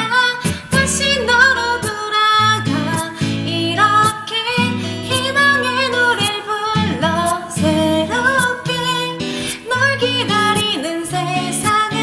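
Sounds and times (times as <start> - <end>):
backing track: 0.0 - 12.0
woman singing pop song: 0.0 - 12.0.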